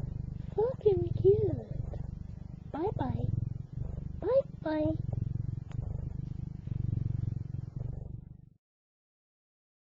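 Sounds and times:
cat purring: 0.0s - 8.6s.

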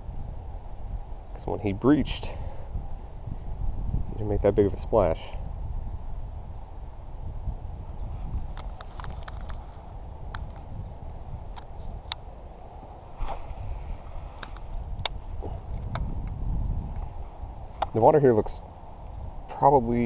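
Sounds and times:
low uneven handling rumble: 0.0s - 20.0s
sharp clicks and light knocks: 8.5s - 9.7s.

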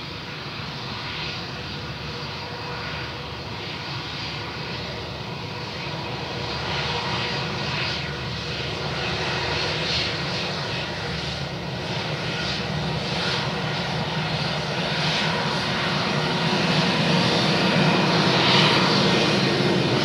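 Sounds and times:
jet engines rumbling: 0.0s - 20.0s.

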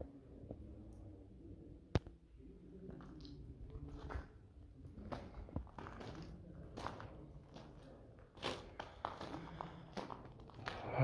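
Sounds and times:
footsteps in a tunnel: 2.0s - 11.0s.

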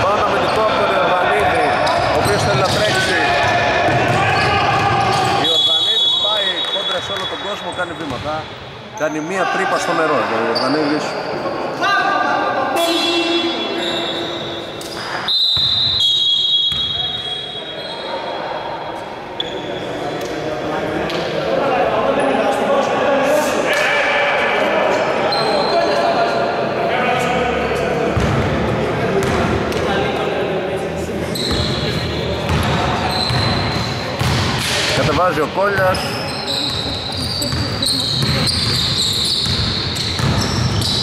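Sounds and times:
players' voices echoing: 0.0s - 41.0s
high-pitched shoe squeaks: 31.3s - 32.0s, 33.0s - 34.1s, 35.8s - 41.0s
basketball bouncing on wooden court: 32.5s - 34.6s, 36.6s - 41.0s.

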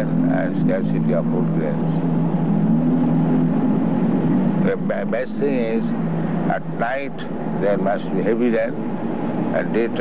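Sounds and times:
faint background hiss: 0.0s - 10.0s
low hum of two tones: 0.0s - 10.0s.

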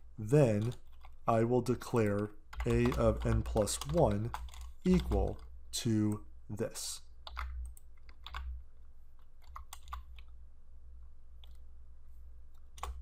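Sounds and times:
typing on computer keyboard: 0.4s - 1.2s, 1.9s - 5.5s, 7.2s - 8.5s, 9.4s - 10.3s, 12.8s - 13.0s.

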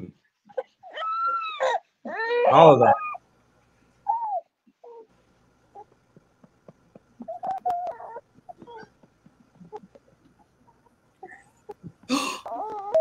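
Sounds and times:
baby cooing and babbling: 4.1s - 5.1s, 7.2s - 8.9s, 12.4s - 13.0s.

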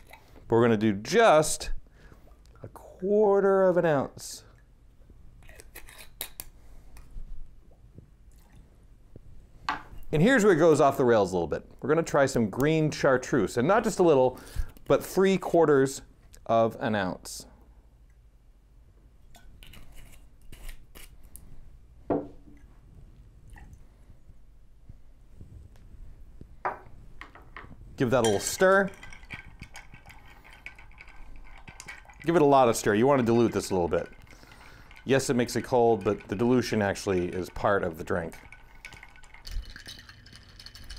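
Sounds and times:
liquid trickling onto ice: 28.4s - 40.9s.

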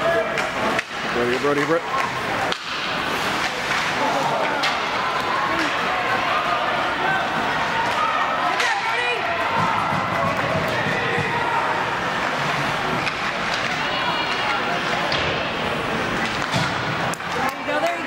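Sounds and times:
crowd voices calling out: 1.8s - 18.0s.

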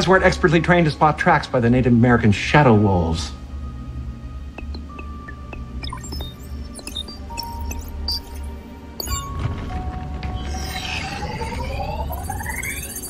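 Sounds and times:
film music: 0.0s - 13.0s
rising electronic tones: 4.4s - 13.0s
short electronic beeps: 4.6s - 9.4s, 10.4s - 13.0s.

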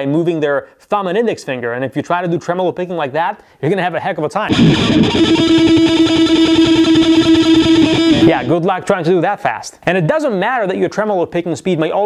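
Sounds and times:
distorted electric guitar tremolo picking: 4.5s - 8.5s.

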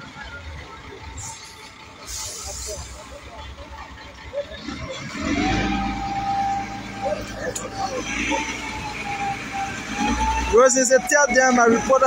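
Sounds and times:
voices in background: 0.0s - 5.4s.

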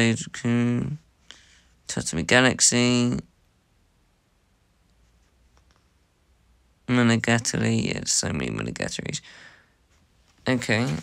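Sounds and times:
man speaking: 0.0s - 1.1s, 1.9s - 3.3s, 6.9s - 9.3s, 10.4s - 11.0s.

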